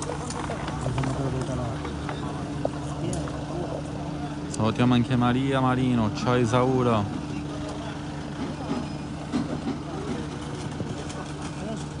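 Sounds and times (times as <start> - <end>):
car engine idling: 0.0 - 12.0
faint murmuring voices: 0.0 - 12.0.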